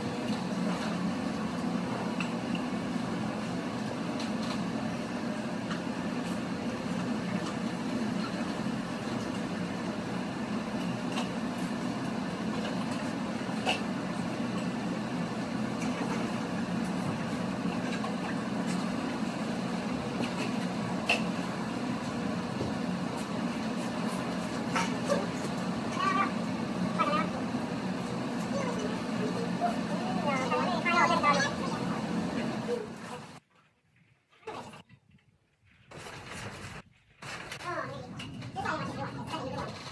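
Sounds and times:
barn machinery humming: 0.0 - 39.9.

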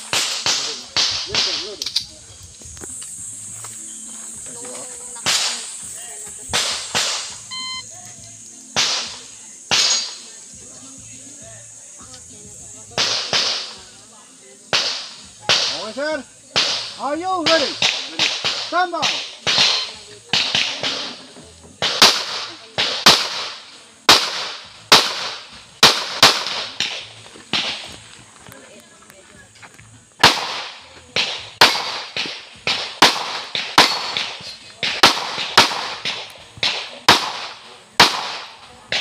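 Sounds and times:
rapid pistol shots: 0.0 - 1.6, 5.2 - 5.7, 6.5 - 7.4, 8.8 - 10.2, 13.0 - 13.8, 14.7 - 15.8, 16.6 - 17.0, 17.7 - 21.2, 21.8 - 27.8, 30.2 - 39.0.

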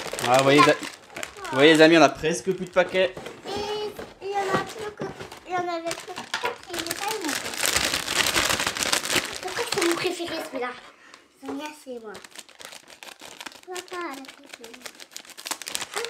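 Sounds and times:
plastic sachet crinkling: 0.0 - 16.0
child's voice: 0.4 - 1.8, 3.4 - 7.6, 9.3 - 12.3, 13.6 - 14.9.

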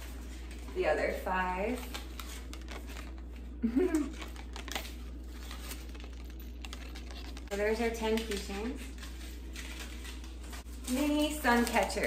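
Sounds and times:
steady low hum: 0.0 - 12.0
person laughing: 3.6 - 4.3.

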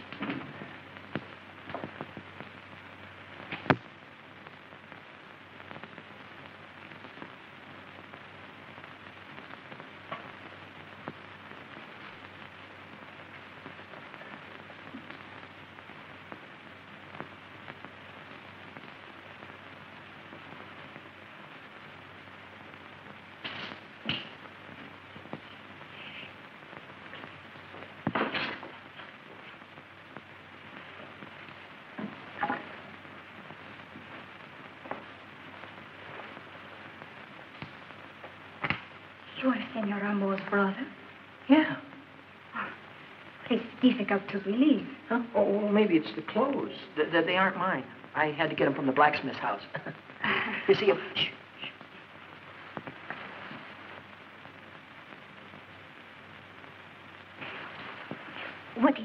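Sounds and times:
film soundtrack hiss with crackles: 0.0 - 59.0.

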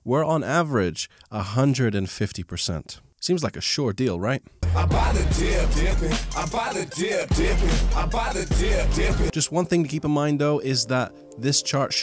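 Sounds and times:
deep bass line: 4.6 - 6.6, 7.3 - 9.3
man rapping over a beat: 4.6 - 10.8.

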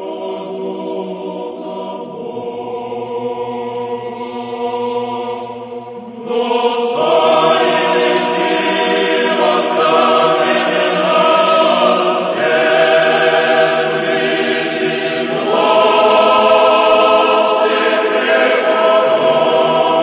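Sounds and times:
choir singing chant-like chords: 0.0 - 20.0.

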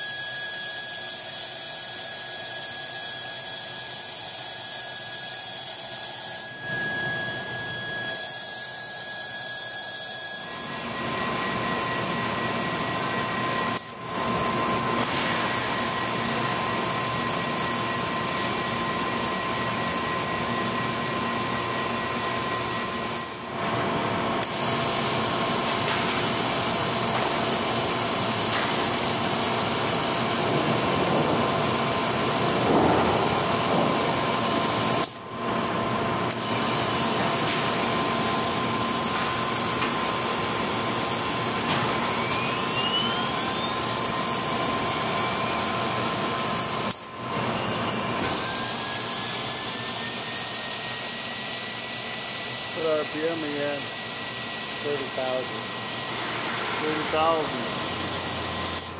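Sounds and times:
spindle hiss and high whine: 0.0 - 23.6, 24.4 - 35.4, 36.2 - 58.9.

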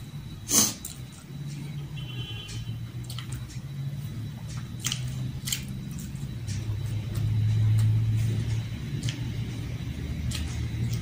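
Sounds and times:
low droning hum: 0.0 - 11.0
wet chewing and lip smacks: 3.0 - 11.0.

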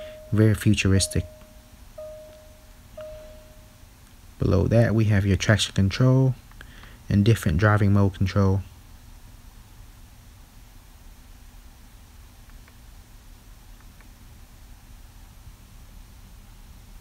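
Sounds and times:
button clicks: 1.0 - 3.6.

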